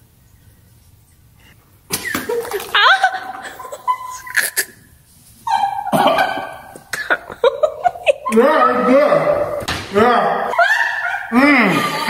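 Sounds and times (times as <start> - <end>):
people laughing and shrieking: 2.0 - 9.5, 10.3 - 12.0.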